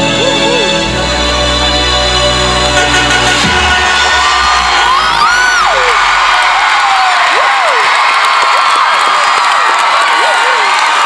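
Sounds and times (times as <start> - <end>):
stadium crowd cheering: 2.8 - 11.0
high whoops: 4.5 - 11.0.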